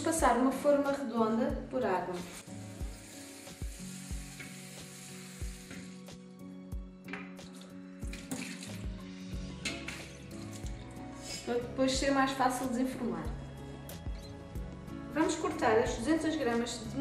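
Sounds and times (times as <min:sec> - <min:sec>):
tap water running into metal tin: 0:02.4 - 0:06.1, 0:07.1 - 0:09.0
water poured into metal sink: 0:02.6 - 0:06.0, 0:07.4 - 0:11.4
water sloshing in tin: 0:07.5 - 0:09.0.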